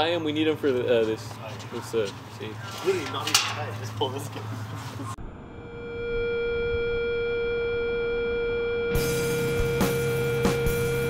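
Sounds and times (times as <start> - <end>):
synthesized drone: 5.0 - 11.0
music track with low bass: 5.5 - 11.0.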